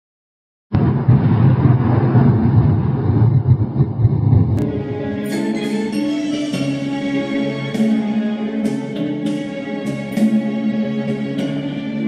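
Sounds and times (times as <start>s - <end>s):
deep rumbling intro effect: 0.7s - 5.2s.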